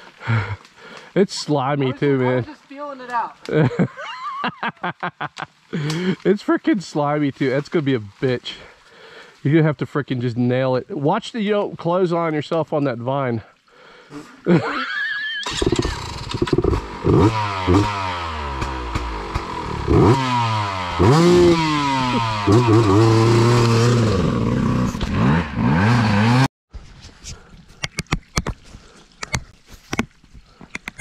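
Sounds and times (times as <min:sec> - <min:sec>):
dirt bike engine revving: 0:15.4 - 0:26.5.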